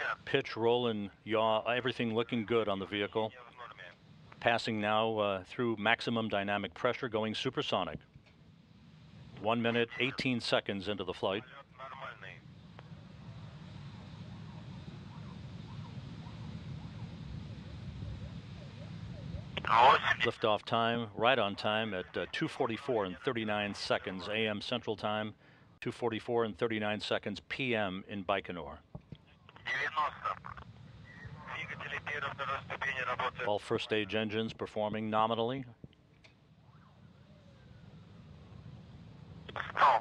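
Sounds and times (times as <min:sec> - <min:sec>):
distant rocket engine rumble: 0:00.0 - 0:23.8, 0:29.3 - 0:35.0, 0:36.4 - 0:40.0
commentary voice: 0:09.4 - 0:12.4, 0:19.6 - 0:24.5, 0:31.4 - 0:34.2, 0:39.5 - 0:40.0
person speaking quietly: 0:31.3 - 0:33.6.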